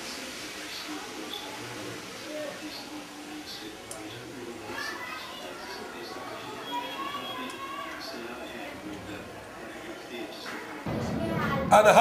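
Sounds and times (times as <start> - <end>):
children calling and chattering: 0.5 - 12.0.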